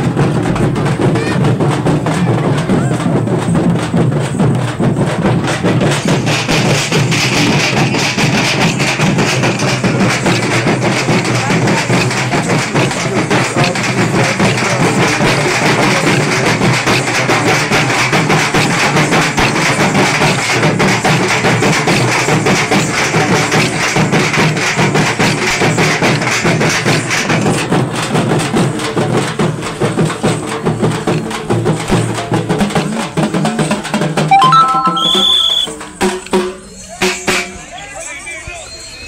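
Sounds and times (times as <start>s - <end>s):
drums beaten with sticks: 0.0s - 37.5s
music: 27.9s - 37.5s.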